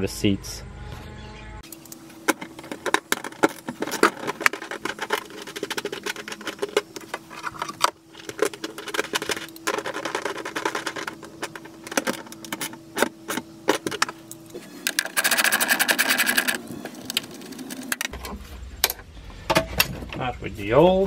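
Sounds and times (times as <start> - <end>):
faint steady hum: 0.0 - 21.0
plastic connectors clicking and rattling: 2.3 - 14.2, 14.8 - 18.1.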